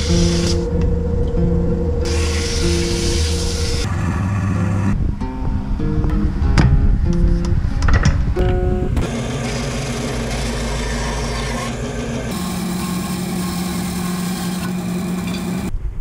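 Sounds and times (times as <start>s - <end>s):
bandsaw running: 0.0s - 0.6s, 2.0s - 4.2s, 9.0s - 15.7s
wood lathe running: 2.0s - 4.2s, 9.0s - 15.7s.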